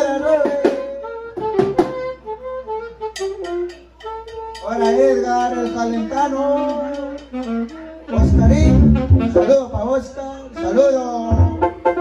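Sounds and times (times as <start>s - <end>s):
brass band melody: 0.7s - 12.0s.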